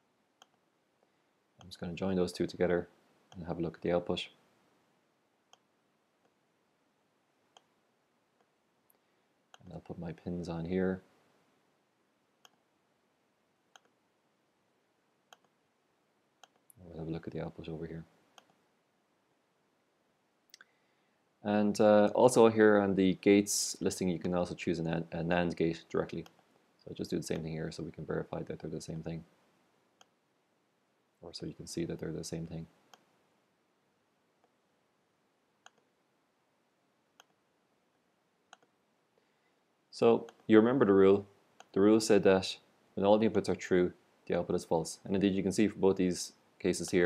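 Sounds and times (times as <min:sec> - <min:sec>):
computer mouse clicks: 0:00.4 - 0:00.6, 0:05.5 - 0:06.4, 0:07.5 - 0:07.7, 0:12.4 - 0:12.6, 0:13.7 - 0:14.0, 0:15.3 - 0:15.6, 0:16.4 - 0:16.8, 0:26.2 - 0:26.5, 0:35.6 - 0:35.9, 0:37.2 - 0:37.4, 0:38.5 - 0:38.8
person speaking: 0:01.6 - 0:04.4, 0:09.6 - 0:11.1, 0:16.6 - 0:18.1, 0:21.4 - 0:29.3, 0:31.2 - 0:32.8, 0:39.9 - 0:47.0.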